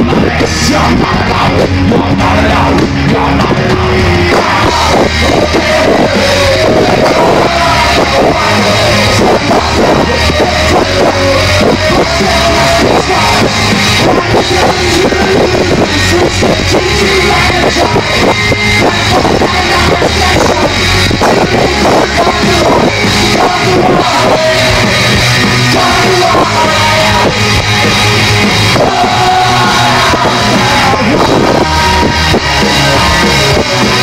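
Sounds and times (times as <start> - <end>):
drums: 0.0 - 34.0
electric guitars: 0.0 - 34.0.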